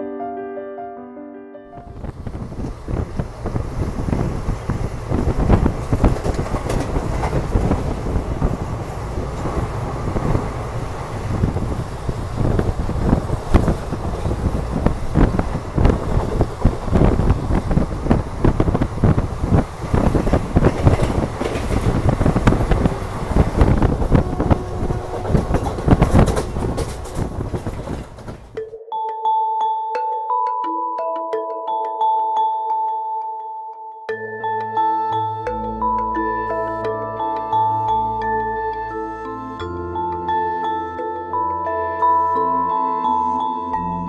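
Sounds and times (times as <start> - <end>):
train wheels rumbling on rail: 1.8 - 28.6
wheel knocks clattering: 12.4 - 28.6.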